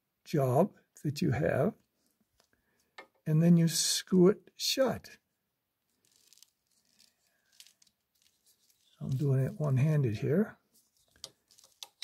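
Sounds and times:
faint plastic clicks and rustles: 0:01.8 - 0:03.3, 0:05.8 - 0:09.8, 0:10.6 - 0:12.0.

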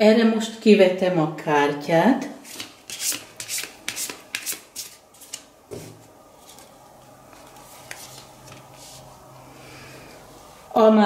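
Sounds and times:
cards being shuffled: 0:02.4 - 0:05.5, 0:07.3 - 0:09.0.

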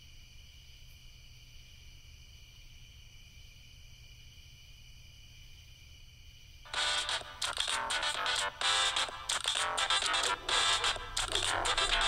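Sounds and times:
crickets chirping: 0:00.0 - 0:12.0
loud music: 0:06.7 - 0:12.0.

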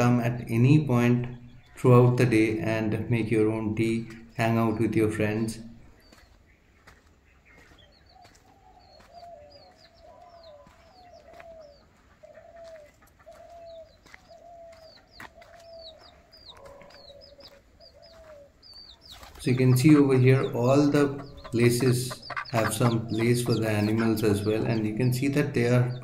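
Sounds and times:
faint bird calls: 0:00.0 - 0:26.0
higher bird chirps: 0:00.0 - 0:26.0.

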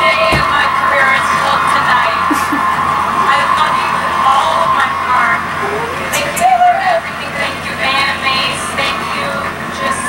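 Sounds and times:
high-pitched wavering cry: 0:02.0 - 0:07.4.

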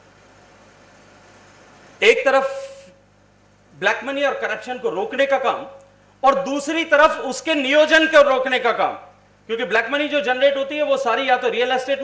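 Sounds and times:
faint electrical hum and hiss: 0:00.0 - 0:12.0.

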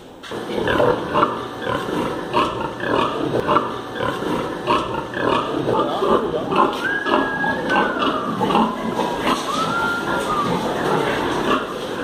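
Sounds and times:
pigs grunting and squealing: 0:00.3 - 0:12.0.

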